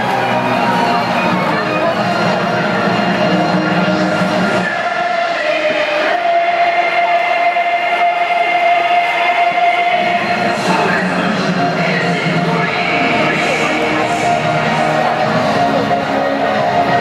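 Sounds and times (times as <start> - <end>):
large crowd: 0.0 - 17.0
music over loudspeakers: 0.0 - 17.0.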